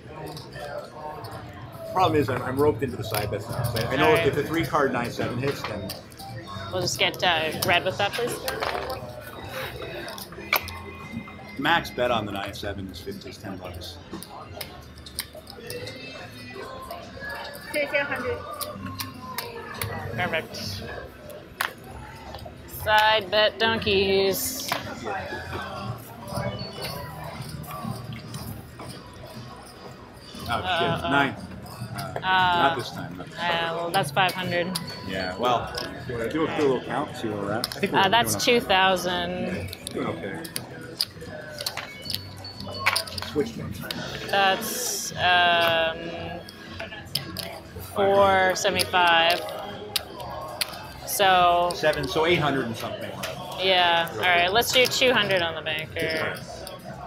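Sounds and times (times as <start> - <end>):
casino table background noise: 0.0 - 57.0
quiet indistinct voices: 0.0 - 57.0.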